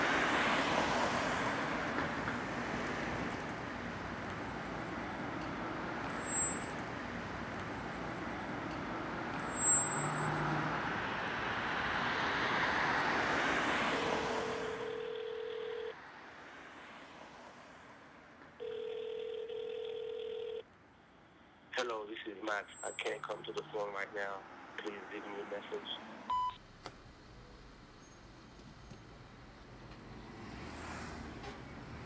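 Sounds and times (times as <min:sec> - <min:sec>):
city traffic noise: 0:00.0 - 0:32.0
voicemail greeting: 0:14.6 - 0:15.9, 0:18.6 - 0:20.6
telephone ringback tone: 0:14.6 - 0:16.0, 0:18.6 - 0:20.6.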